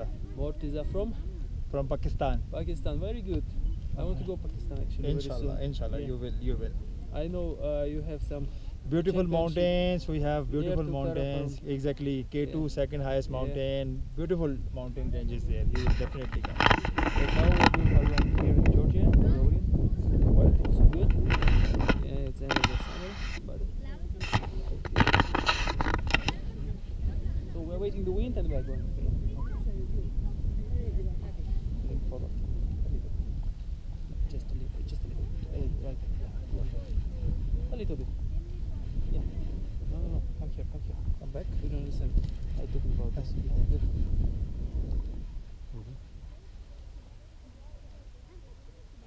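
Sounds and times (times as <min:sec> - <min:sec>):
voices talking: 0:00.0 - 0:33.1, 0:45.6 - 0:49.0
wind buffeting microphone: 0:00.0 - 0:49.0.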